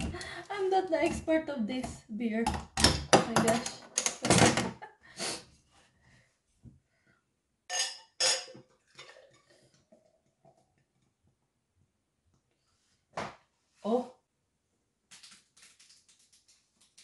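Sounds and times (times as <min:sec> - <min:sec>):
glass bottle clinking against glass: 0:07.7 - 0:08.6
beer pouring: 0:08.2 - 0:11.0.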